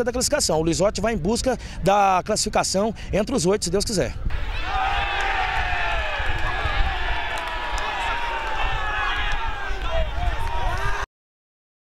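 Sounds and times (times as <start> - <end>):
low wind rumble on microphone: 0.0 - 11.0
voices calling and shouting: 4.3 - 11.0.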